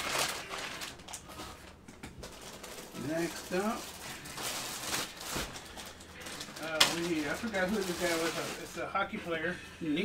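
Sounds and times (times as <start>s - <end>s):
plastic sharp crackle: 0.0s - 8.7s
plastic bag crinkling: 0.0s - 9.1s.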